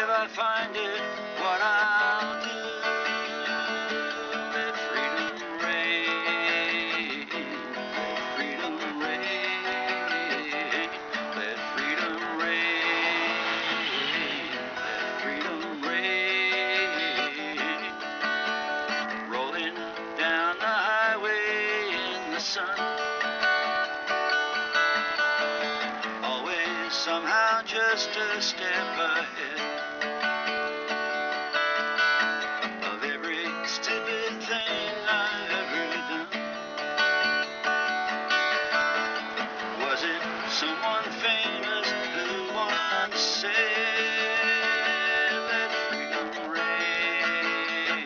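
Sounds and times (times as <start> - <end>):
strummed acoustic guitar: 0.0 - 48.0.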